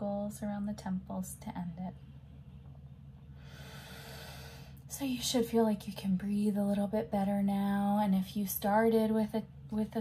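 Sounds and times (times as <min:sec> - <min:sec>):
woman breathing in through nose: 0:03.3 - 0:04.8.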